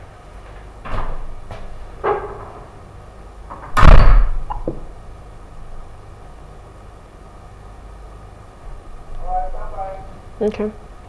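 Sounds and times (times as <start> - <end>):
low room hum: 0.0 - 11.0
loud thump: 3.8 - 4.8.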